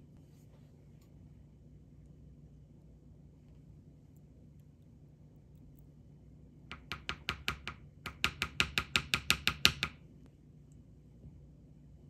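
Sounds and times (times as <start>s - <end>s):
wooden spoon knocking wooden bowl: 6.7s - 10.0s.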